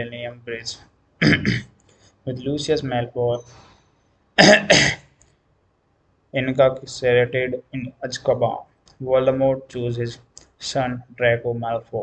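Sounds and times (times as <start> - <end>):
man coughing: 1.2 - 1.7, 4.4 - 5.1.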